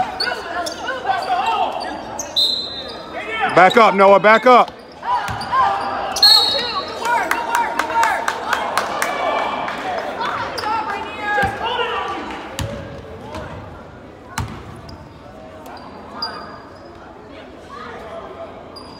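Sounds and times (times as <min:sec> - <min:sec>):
referee whistle: 0:02.2 - 0:03.9, 0:06.1 - 0:07.0.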